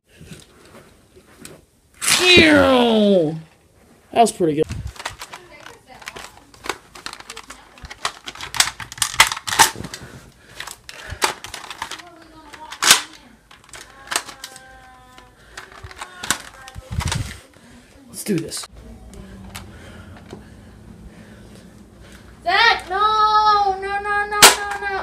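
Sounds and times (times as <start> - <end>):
plastic toy blaster clicking: 11.2 - 14.6.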